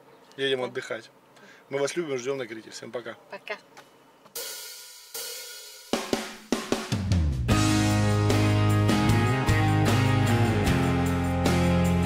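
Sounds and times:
sharp drum hits: 4.4s - 8.5s.

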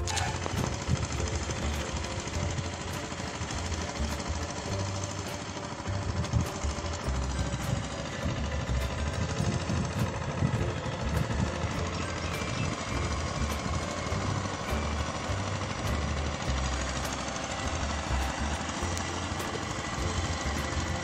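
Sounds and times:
small engine running: 0.0s - 21.0s.

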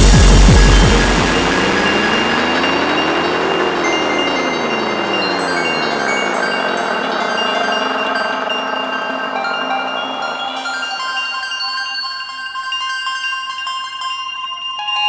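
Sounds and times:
synth sweep rising and falling: 0.0s - 11.4s
sustained high synth tones: 0.0s - 15.0s.

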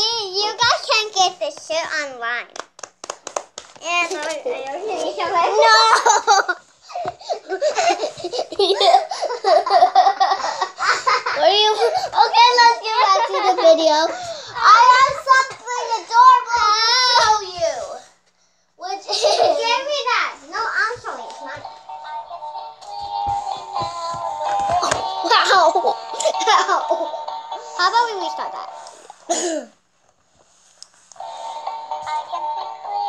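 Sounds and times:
young girls laughing: 5.5s - 14.8s, 19.0s - 19.8s, 25.2s - 27.2s
soft handling thumps: 20.9s - 25.2s.

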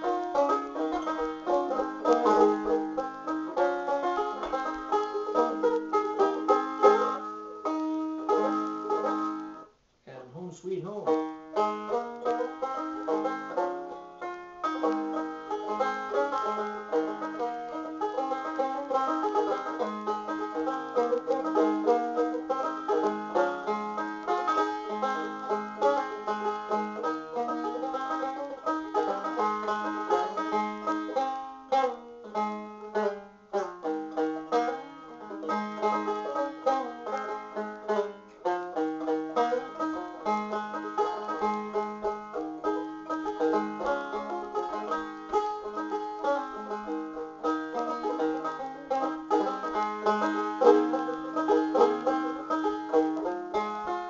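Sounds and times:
banjo picking: 0.0s - 54.0s.

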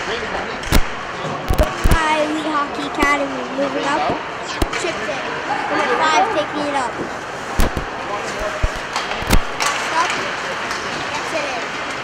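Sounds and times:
hockey sticks and puck knocking: 0.0s - 2.0s, 6.9s - 12.0s
players and spectators voices: 0.0s - 12.0s.

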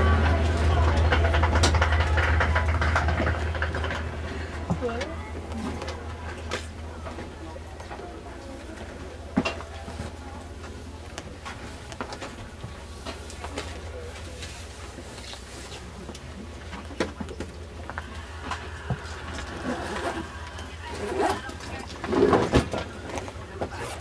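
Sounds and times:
passengers' voices: 0.0s - 24.0s
train coach low hum: 0.0s - 24.0s
scattered clicks and knocks: 0.2s - 7.3s.

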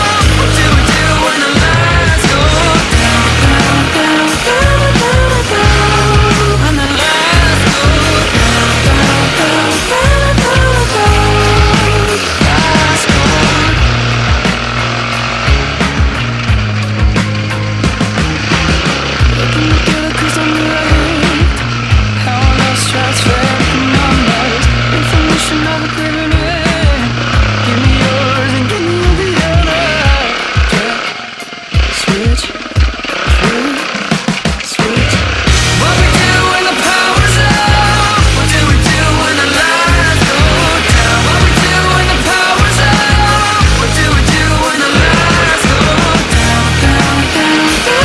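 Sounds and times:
dirt bike engine revving: 0.0s - 48.0s
rock music: 0.0s - 48.0s.

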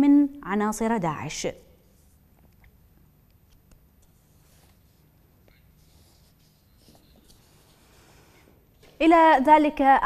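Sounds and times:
faint low hum and hiss: 0.0s - 10.0s.

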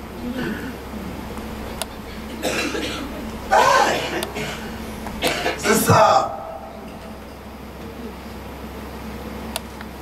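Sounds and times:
man preaching: 3.5s - 4.4s, 5.4s - 6.8s.

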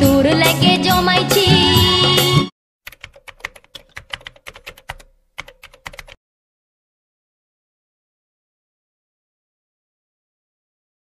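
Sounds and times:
rapid keyboard typing clicks: 2.9s - 6.2s.

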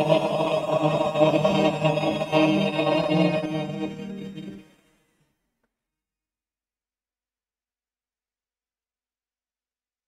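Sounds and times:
choir holding a chord: 0.0s - 4.9s.

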